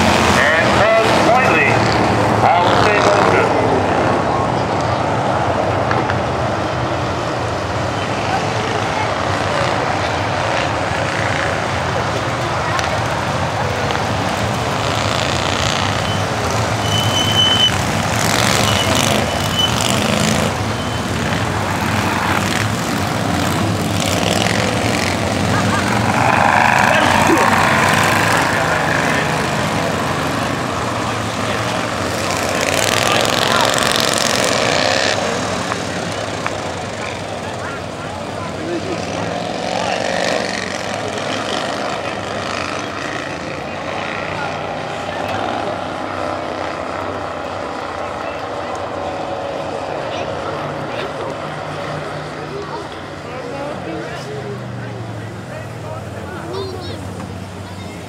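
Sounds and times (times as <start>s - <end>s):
people's voices: 0.0s - 58.0s
small race car engines: 0.0s - 58.0s.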